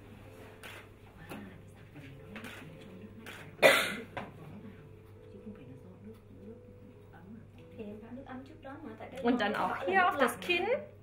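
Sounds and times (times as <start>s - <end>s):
person coughing: 3.6s - 4.1s.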